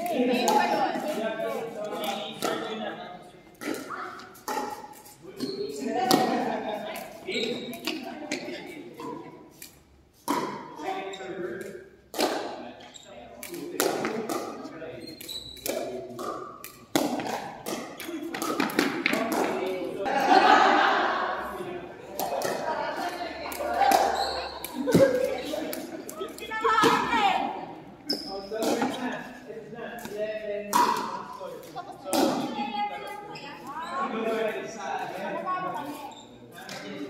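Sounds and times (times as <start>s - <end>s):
players chatting: 0.0s - 37.0s.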